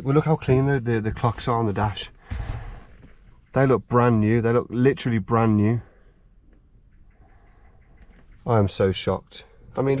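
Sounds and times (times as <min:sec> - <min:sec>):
faint low rumble: 0:00.0 - 0:08.6.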